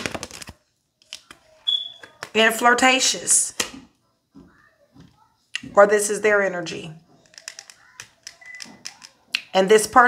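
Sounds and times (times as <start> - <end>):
cards being shuffled: 0.0 - 1.5, 7.2 - 9.2
high-pitched beep: 1.7 - 2.0.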